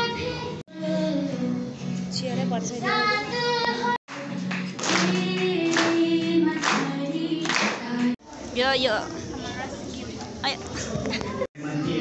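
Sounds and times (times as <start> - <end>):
acoustic guitar: 0.0 - 8.2.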